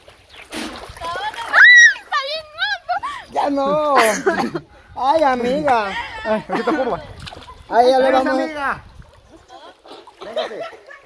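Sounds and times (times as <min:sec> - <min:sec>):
water splashing from swimmer: 0:00.0 - 0:03.2, 0:06.6 - 0:11.0.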